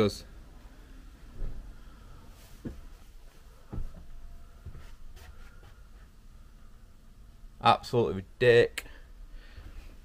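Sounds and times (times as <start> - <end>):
footsteps on van floor: 2.4 - 5.8.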